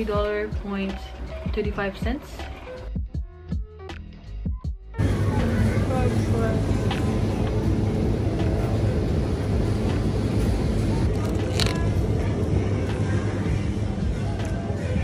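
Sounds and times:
faint voices: 5.0s - 8.4s
refrigerator hum and hiss: 5.0s - 15.0s.

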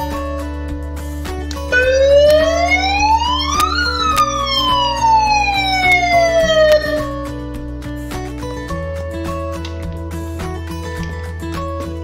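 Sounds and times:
background music: 0.0s - 12.0s
megaphone siren wailing: 1.8s - 7.1s.

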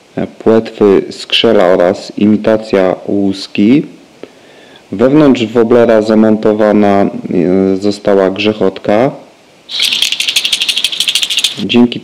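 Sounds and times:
lure rattle beads clicking: 9.7s - 11.7s.

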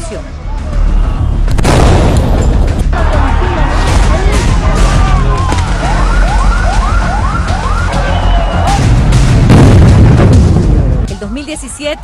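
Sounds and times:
siren whooping: 5.6s - 8.8s.

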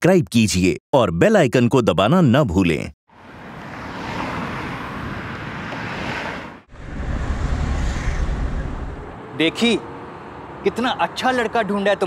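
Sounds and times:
cars driving past: 3.1s - 12.0s.

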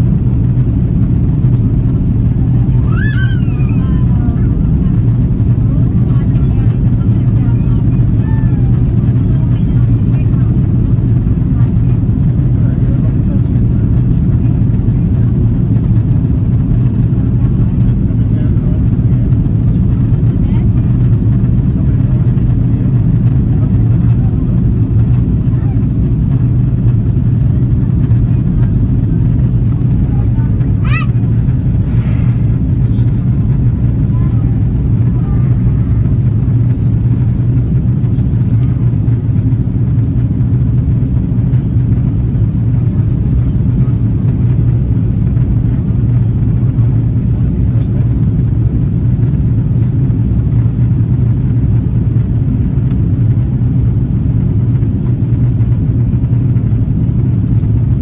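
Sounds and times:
airliner cabin engine drone: 0.0s - 58.0s.

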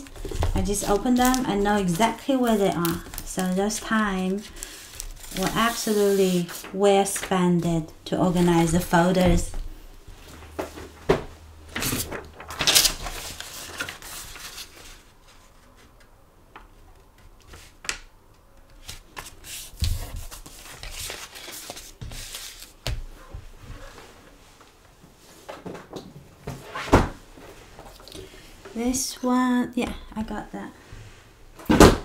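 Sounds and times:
paper rustling and sliding: 0.0s - 7.3s, 11.8s - 15.9s, 18.8s - 23.0s.

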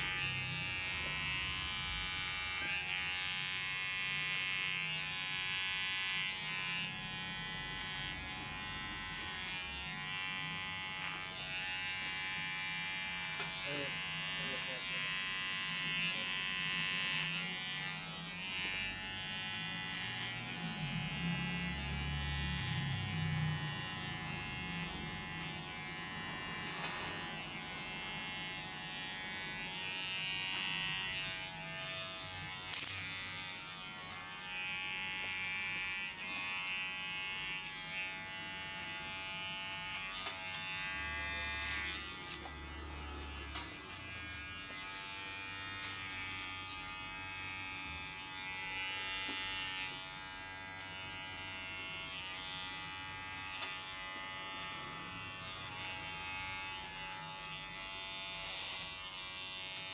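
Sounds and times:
beard trimmer buzzing: 0.0s - 59.9s.

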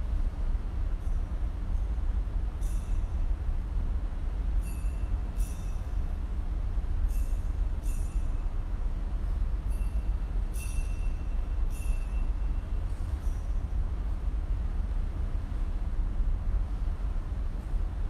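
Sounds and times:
low rumble of room noise: 0.0s - 18.0s
light metallic clinks: 2.6s - 3.2s, 4.6s - 6.1s, 7.1s - 8.6s, 9.6s - 13.8s.

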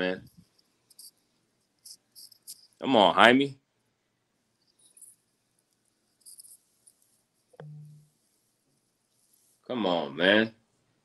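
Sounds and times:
man speaking: 0.0s - 0.2s, 2.8s - 3.6s, 9.7s - 10.5s
faint high-pitched chirps: 0.0s - 1.2s, 1.8s - 2.8s, 6.2s - 6.6s, 7.5s - 8.1s.

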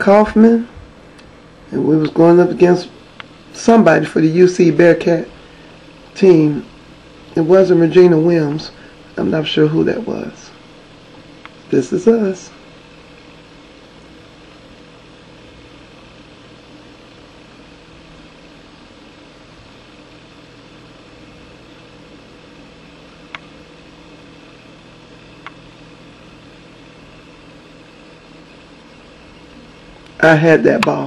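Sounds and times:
faint hum: 0.0s - 31.0s
steady low hiss: 0.0s - 31.0s.

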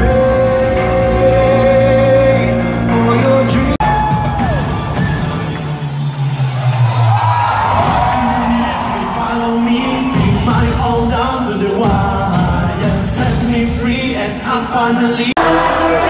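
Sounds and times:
live pop song with band: 0.0s - 5.3s, 7.7s - 16.0s
crowd whooping: 3.8s - 11.1s.

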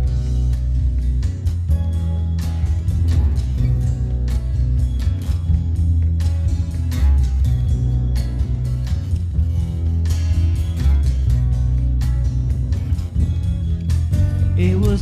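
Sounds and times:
acoustic guitar strumming: 0.0s - 15.0s.

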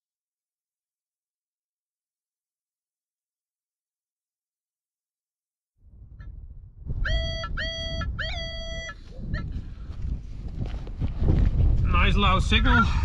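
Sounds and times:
metal detector beeps: 7.1s - 9.0s.

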